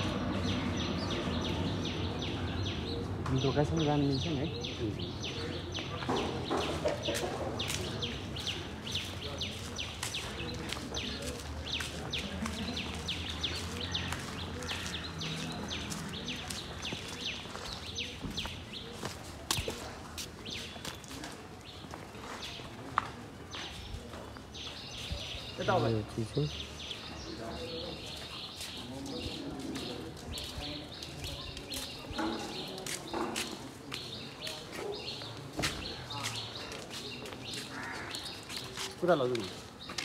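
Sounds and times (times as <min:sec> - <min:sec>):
birds chirping: 0:00.0 - 0:40.0.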